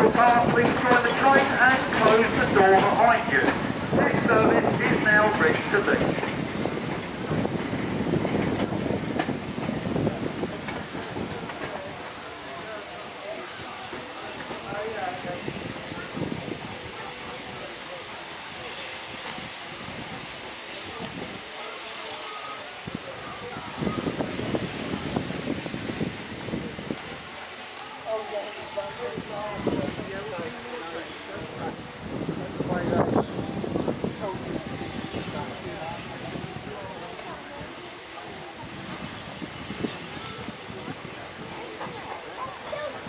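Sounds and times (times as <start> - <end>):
people talking: 0.0 - 6.4, 9.7 - 25.4, 26.5 - 43.0
wind on microphone: 0.0 - 12.0, 22.8 - 27.4, 31.3 - 43.0
steam train pulling away: 0.0 - 43.0.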